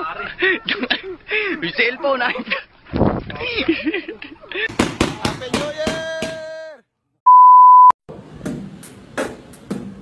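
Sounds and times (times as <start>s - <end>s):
people laughing: 0.0s - 2.7s, 3.4s - 4.7s
high electronic beep: 7.3s - 8.0s.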